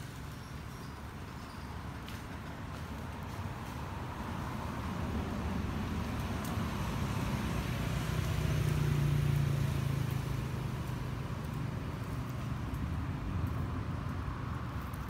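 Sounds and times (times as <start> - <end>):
passing vehicle engine drone: 3.9 - 15.0.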